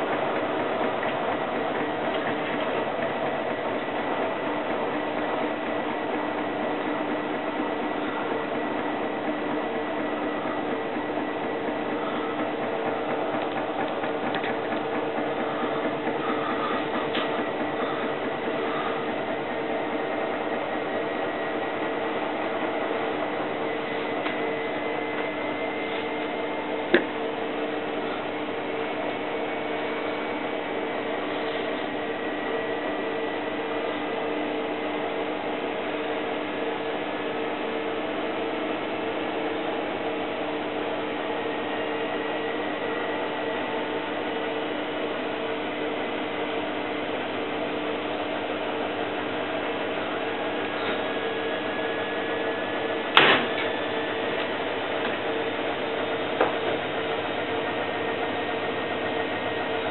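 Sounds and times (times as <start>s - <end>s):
washer-dryer humming: 0.0s - 59.9s.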